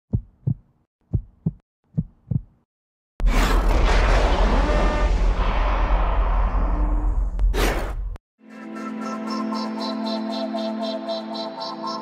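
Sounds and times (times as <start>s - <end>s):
heartbeat thumps: 0.1s - 2.6s.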